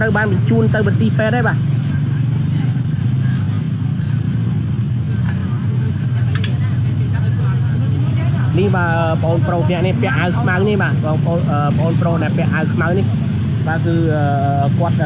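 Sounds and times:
motorcycle engines idling: 0.0 - 15.0
voices: 0.0 - 15.0.

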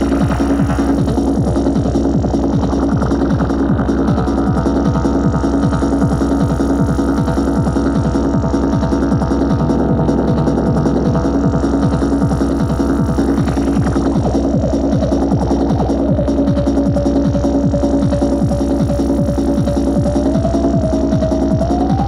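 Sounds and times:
synthesized percussion hits: 0.0 - 16.6
low drone: 0.0 - 22.0.

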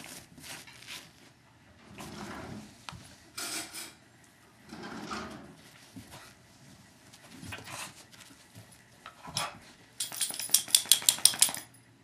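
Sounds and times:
dogs scuffling on carpet: 0.0 - 1.4, 5.6 - 9.9.

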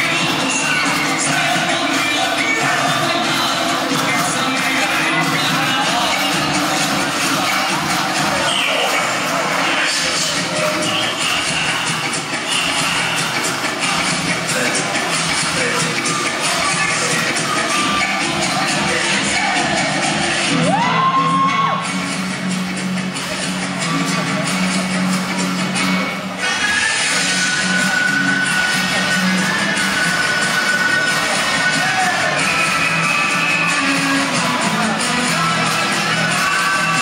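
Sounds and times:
audience cheering and shouting: 0.0 - 22.4, 23.1 - 37.0
dance music playing loudly: 0.0 - 37.0.

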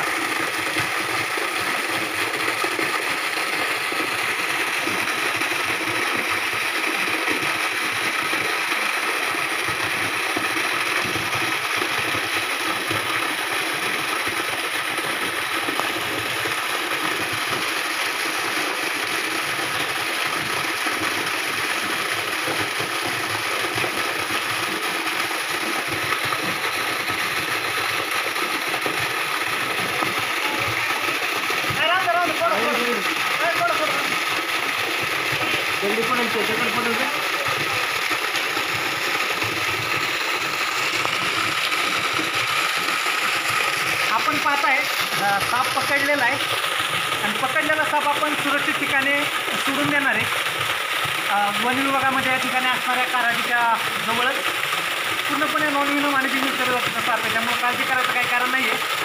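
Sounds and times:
water pump motor running: 0.0 - 59.0.

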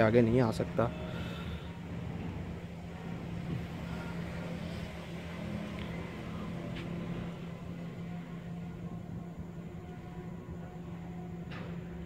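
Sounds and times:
rumbling background noise: 0.0 - 12.0
steady low hum: 0.0 - 12.0.

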